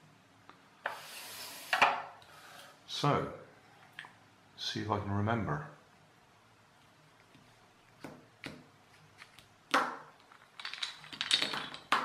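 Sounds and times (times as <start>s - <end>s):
wooden puzzle pieces clacking: 8.4s - 12.0s.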